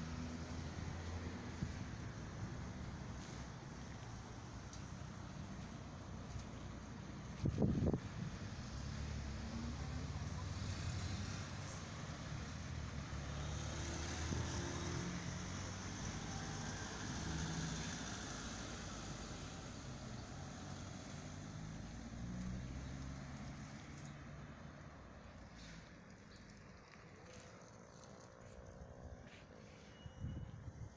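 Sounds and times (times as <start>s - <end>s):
vehicle engine rumble: 0.0s - 30.9s.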